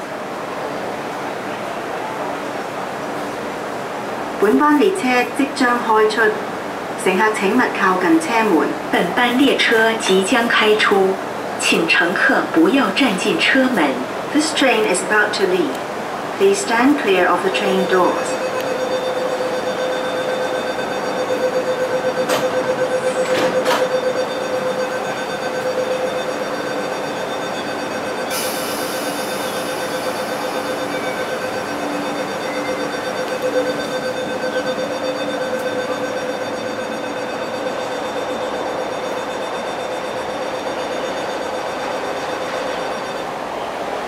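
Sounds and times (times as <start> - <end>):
electric train humming: 0.0 - 44.0.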